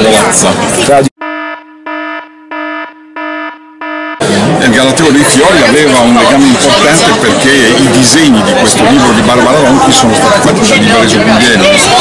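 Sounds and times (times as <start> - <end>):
buzzy alarm beeps: 1.2 - 4.2.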